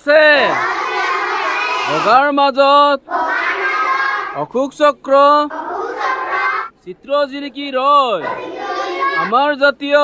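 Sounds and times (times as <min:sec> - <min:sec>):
children reciting in chorus: 0:00.1 - 0:04.6, 0:05.3 - 0:06.8, 0:08.1 - 0:09.6.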